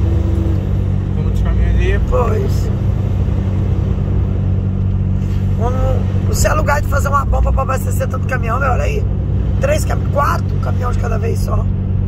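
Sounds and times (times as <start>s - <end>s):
truck engine droning: 0.0s - 12.0s.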